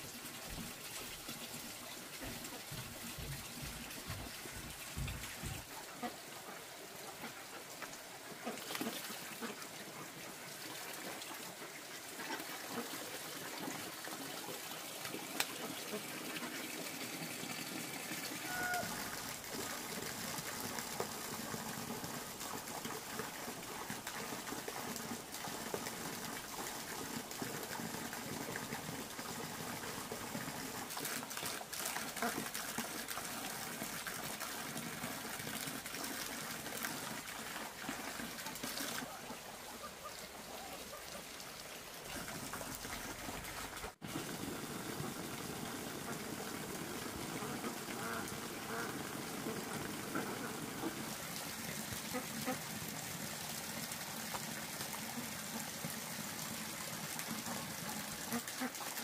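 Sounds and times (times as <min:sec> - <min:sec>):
water trickling: 0:00.0 - 0:59.0
footsteps: 0:02.2 - 0:05.7.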